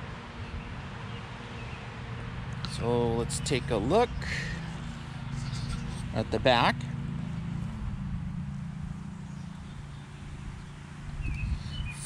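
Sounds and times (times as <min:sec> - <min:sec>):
low engine hum: 0:00.0 - 0:12.0
outdoor background noise: 0:00.0 - 0:12.0.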